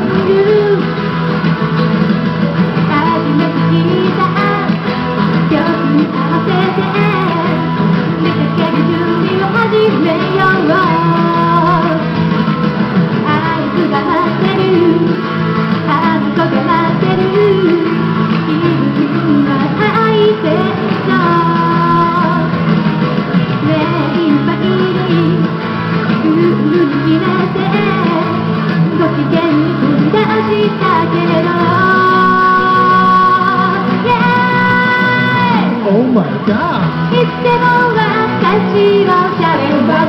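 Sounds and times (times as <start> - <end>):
woman singing into a microphone: 0.0 - 1.3, 2.7 - 12.2, 13.2 - 22.6, 23.6 - 35.8, 36.4 - 40.0
backing music: 0.0 - 40.0.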